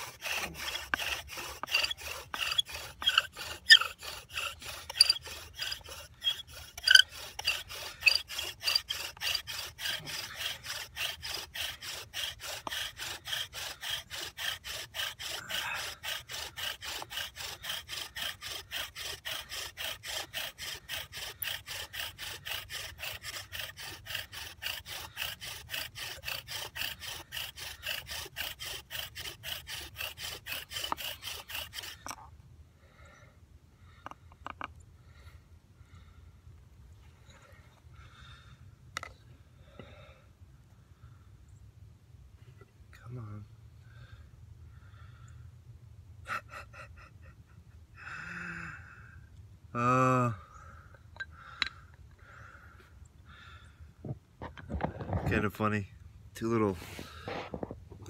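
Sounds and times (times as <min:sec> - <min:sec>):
wooden spindle grinding: 0:00.0 - 0:32.3, 0:54.4 - 0:58.0
sharp squeaks: 0:00.7 - 0:10.0.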